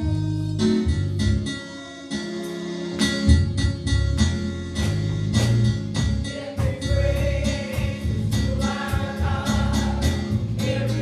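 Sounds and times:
voices singing gospel: 1.8 - 3.3, 6.1 - 11.0
band with heavy bass: 3.0 - 11.0.

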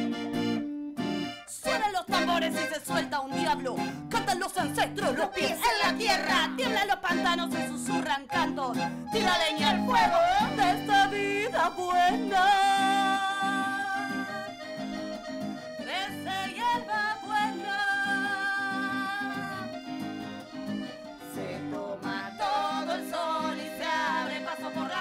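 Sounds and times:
accordion: 0.0 - 25.0
strummed acoustic guitar: 0.0 - 25.0
women singing: 1.5 - 14.7, 15.9 - 19.8, 21.2 - 25.0.

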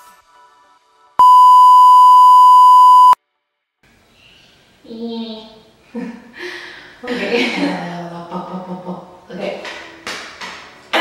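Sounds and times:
test-tone beep: 1.2 - 3.2.

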